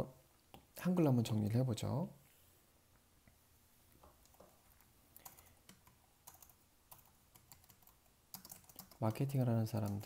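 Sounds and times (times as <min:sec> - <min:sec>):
faint keyboard typing: 0:04.0 - 0:10.0.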